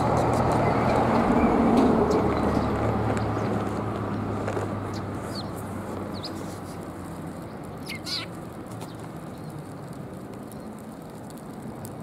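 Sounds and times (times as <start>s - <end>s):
road traffic rumble: 0.0s - 12.0s
sparrows chirping: 0.2s - 6.8s, 7.4s - 10.8s.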